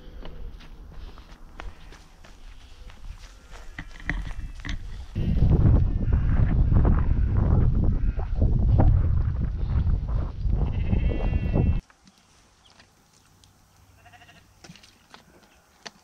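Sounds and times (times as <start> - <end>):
quiet outdoor background: 0.0 - 16.0
gusty wind rumble on microphone: 3.0 - 11.8.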